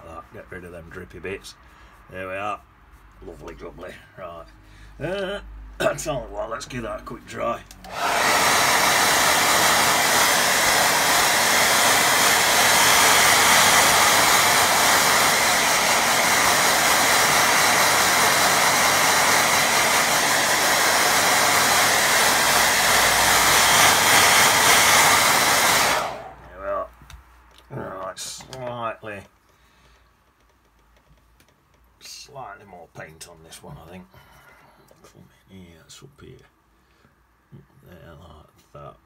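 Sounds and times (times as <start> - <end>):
hair dryer blowing: 7.8 - 26.7.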